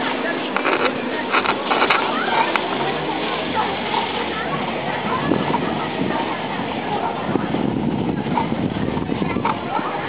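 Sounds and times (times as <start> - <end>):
indistinct voices of passers-by: 0.0 - 10.0
steady background noise: 0.0 - 10.0.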